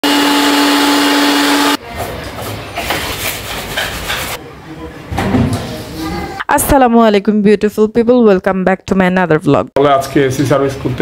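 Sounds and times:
cleaning machine whining: 0.0s - 1.8s.

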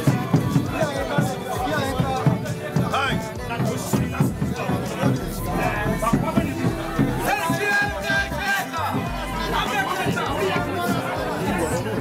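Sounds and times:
music playing: 0.0s - 12.0s
people talking over one another: 0.0s - 12.0s.

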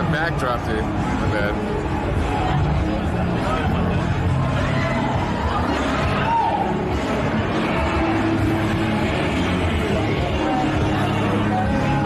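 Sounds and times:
crowded street din: 0.0s - 12.0s.

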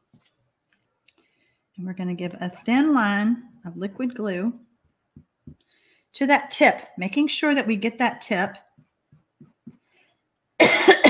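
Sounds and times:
woman coughing loudly: 10.6s - 11.0s.

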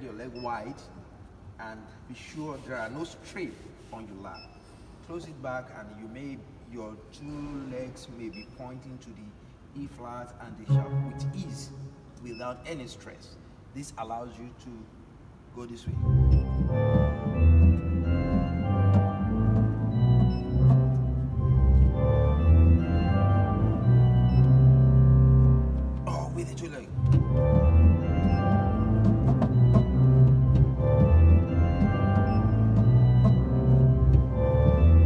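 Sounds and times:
deep organ pedal notes: 10.7s - 12.0s, 15.9s - 35.0s.

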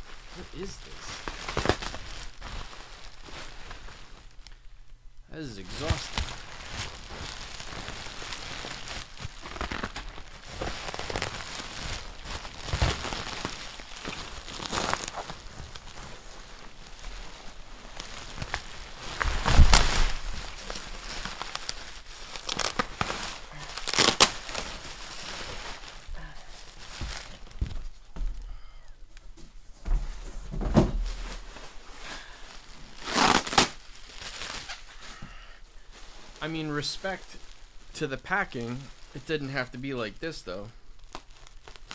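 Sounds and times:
bubble wrap tearing: 0.0s - 4.6s, 5.6s - 28.0s, 31.0s - 41.9s
bubble wrap crinkling: 0.0s - 29.3s, 30.0s - 41.9s.

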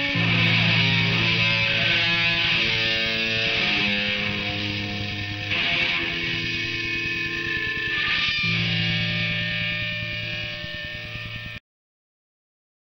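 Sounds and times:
distorted electric guitar chords: 0.0s - 11.6s
hum: 0.0s - 11.6s.

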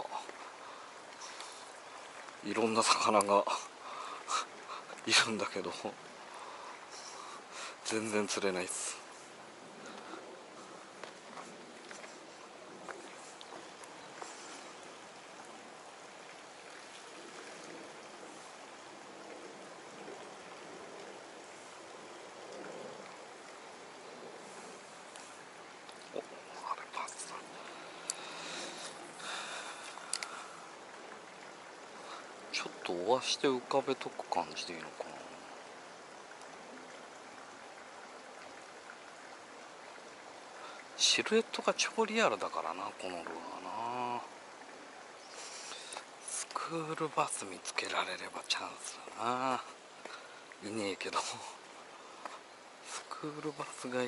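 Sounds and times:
running water: 0.0s - 54.0s.

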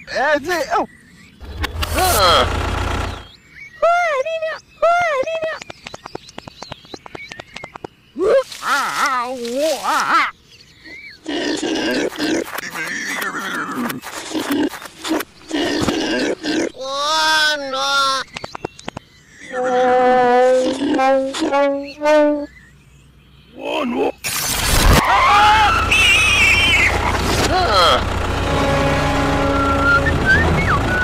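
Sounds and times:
loud noisy burst: 1.4s - 3.3s, 24.2s - 31.0s
animal grunts and squeals: 8.2s - 17.1s, 19.4s - 22.4s
squeaky gibberish voice: 19.5s - 22.5s.

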